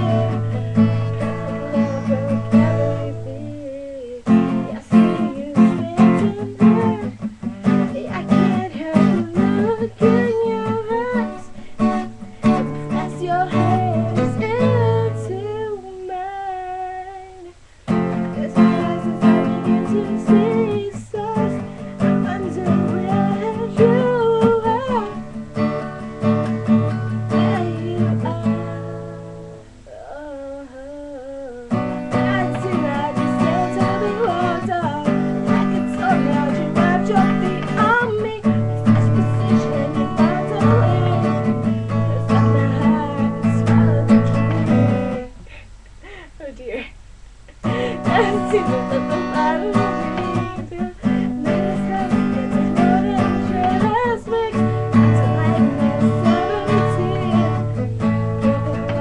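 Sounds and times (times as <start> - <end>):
strummed acoustic guitar: 0.0 - 29.9, 31.7 - 45.7, 47.5 - 59.0
young woman singing: 0.0 - 59.0.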